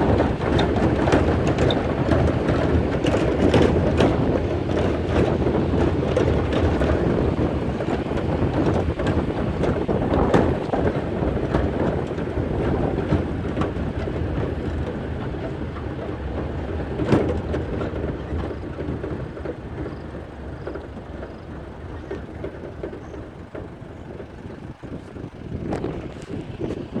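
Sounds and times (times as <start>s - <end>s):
knocks and rattles: 0.0s - 27.0s
truck rumbling on dirt track: 0.0s - 27.0s.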